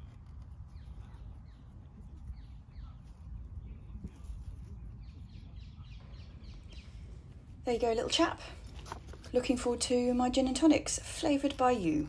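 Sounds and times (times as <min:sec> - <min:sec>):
steady low rumble: 0:00.0 - 0:10.1.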